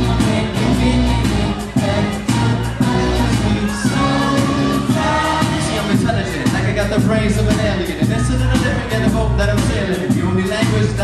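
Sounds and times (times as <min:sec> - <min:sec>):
live hip-hop band: 0:00.0 - 0:11.0.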